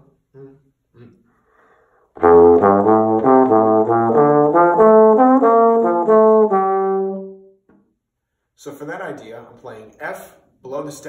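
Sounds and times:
bass trombone fast run: 0:02.2 - 0:07.4.

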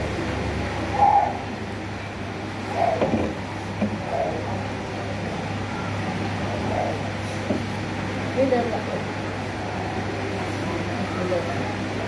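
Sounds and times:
air conditioning hum: 0:00.0 - 0:12.0.

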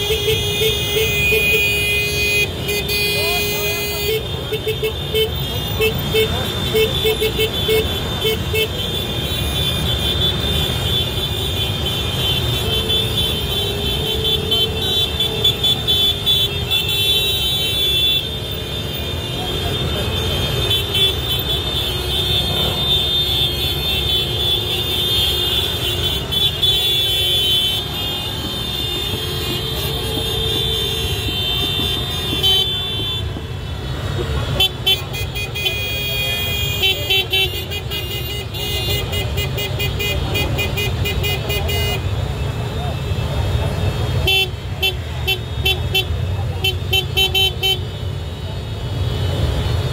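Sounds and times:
scooter horns honking: 0:00.0 - 0:43.1, 0:43.8 - 0:48.2.

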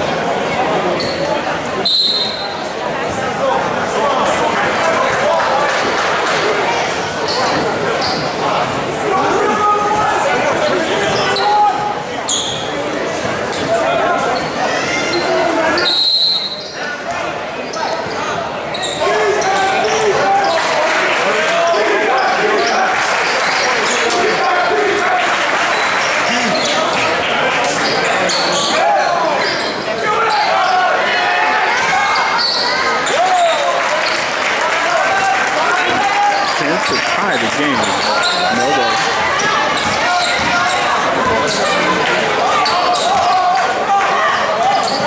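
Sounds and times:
voices calling out: 0:03.8 - 0:45.0.

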